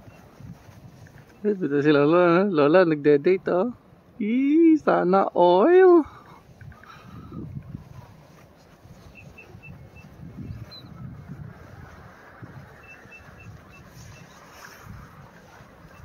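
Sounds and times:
wind on microphone: 0.0 - 1.4, 6.2 - 16.0
bird calling high pips: 8.9 - 11.0, 12.6 - 16.0.

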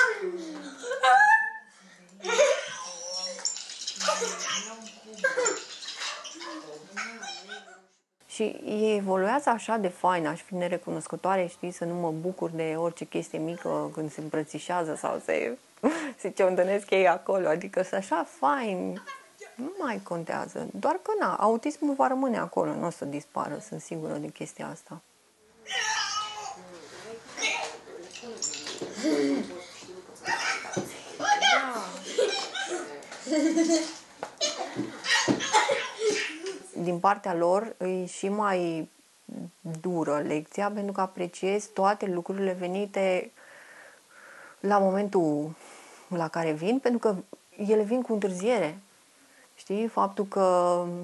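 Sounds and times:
boy squealing: 25.6 - 26.6
child whining: 25.6 - 26.7.

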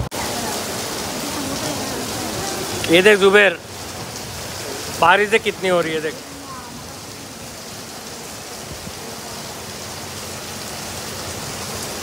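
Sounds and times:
heavy rain on wet paving: 0.0 - 12.0.

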